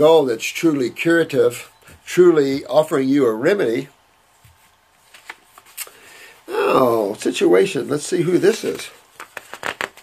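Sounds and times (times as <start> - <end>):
paper rustling: 4.4 - 6.0, 8.3 - 10.0.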